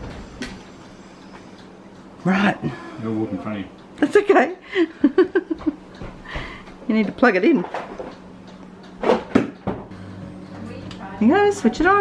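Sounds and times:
refrigerator low hum: 0.0 - 12.0.

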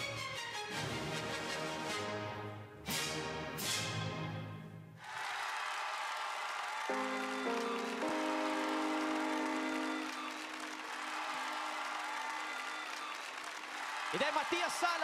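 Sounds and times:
audience applauding: 5.0 - 15.0
held musical notes: 6.9 - 11.8.

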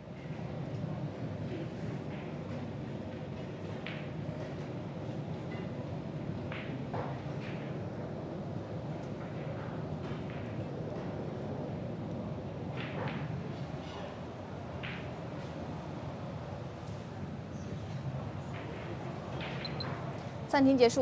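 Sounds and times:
low hum of room tone: 0.0 - 21.0.

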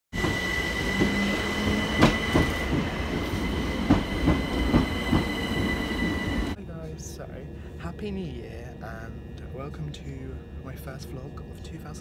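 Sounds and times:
high train whine: 0.1 - 12.0
train rumble: 0.1 - 12.0
train wheels clicking over rail joints: 3.7 - 5.4.

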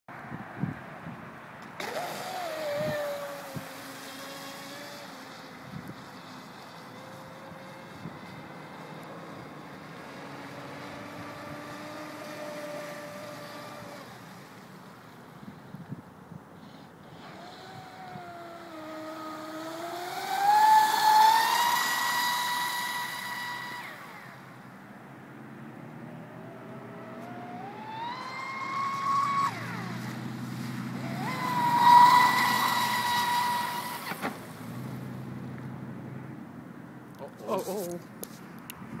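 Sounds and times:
electric motor whining: 1.8 - 14.6, 17.0 - 24.6, 26.3 - 35.2.

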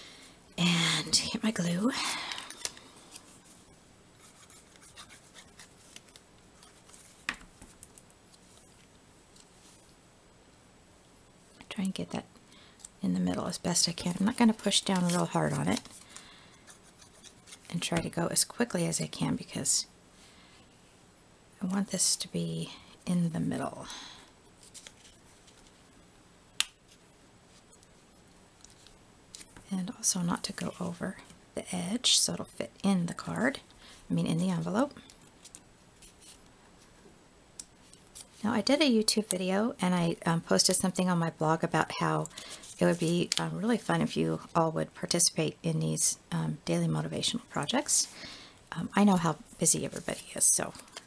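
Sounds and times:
light rubbing of cardstock: 4.2 - 7.8
paper handling: 4.2 - 9.9, 14.7 - 17.7, 24.6 - 25.8, 42.4 - 43.4.

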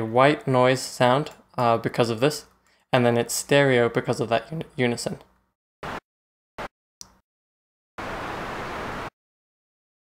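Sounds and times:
synthesizer white noise: 5.8 - 6.0, 8.0 - 9.1.

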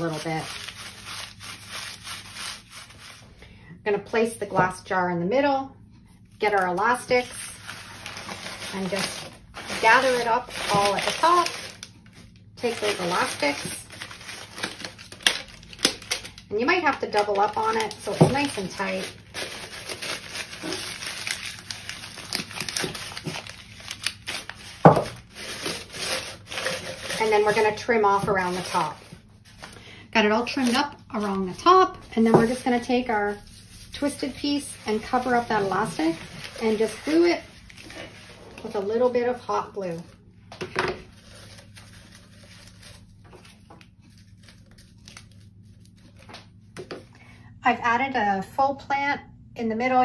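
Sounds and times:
paper being crumpled: 0.0 - 3.3, 6.4 - 29.8, 30.4 - 38.8, 41.0 - 46.6.

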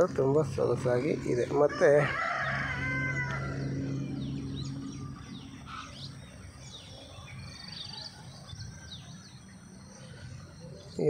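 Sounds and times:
low steady hum: 0.0 - 11.0
small birds chirping: 0.0 - 11.0.

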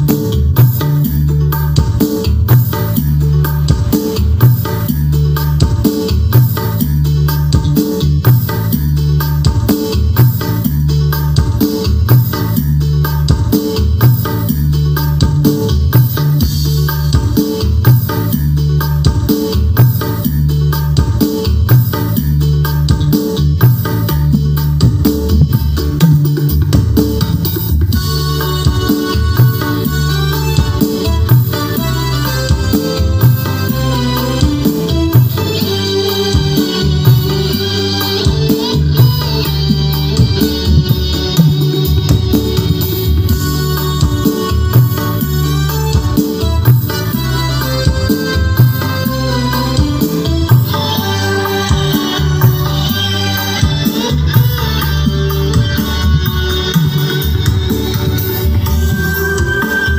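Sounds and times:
loud music with heavy bass: 0.0 - 59.9.

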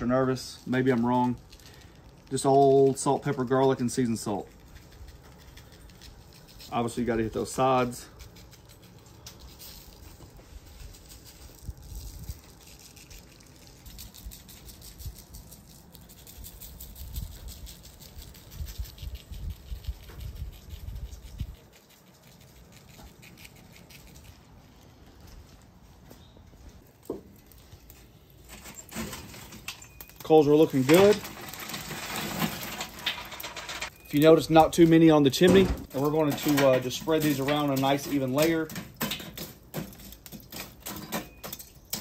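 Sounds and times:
seasoning granules falling on paper: 0.0 - 22.7.

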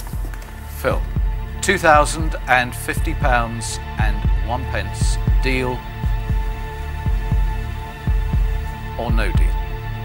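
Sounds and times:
double low thumps: 0.0 - 10.0
steady held drone: 0.0 - 10.0.

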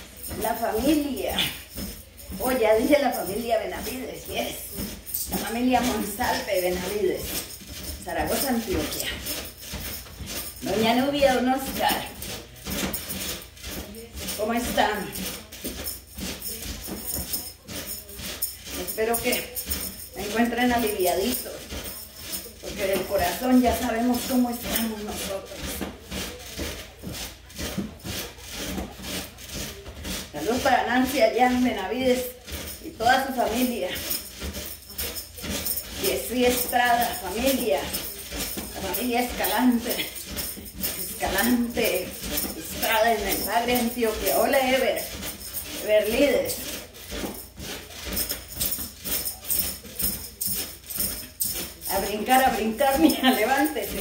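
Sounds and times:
person speaking: 0.0 - 9.7, 10.6 - 12.4, 35.8 - 46.9, 51.8 - 54.0
bouncing on mini trampoline: 0.0 - 54.0
rattling hand-held shakers: 0.0 - 54.0.

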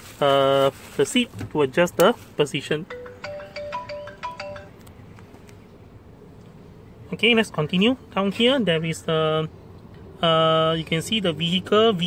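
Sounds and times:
electronic beeping melody: 2.9 - 4.8.

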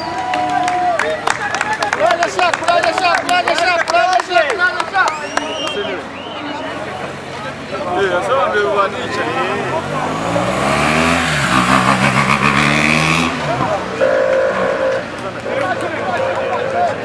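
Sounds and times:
crowd voices: 0.0 - 17.0
motorcycle engine passing by: 9.2 - 13.8.

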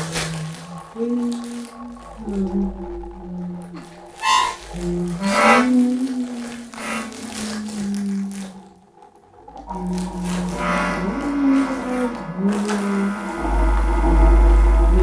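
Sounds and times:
crackly electronic noise: 0.0 - 15.0
deep electronic hum: 0.0 - 15.0.

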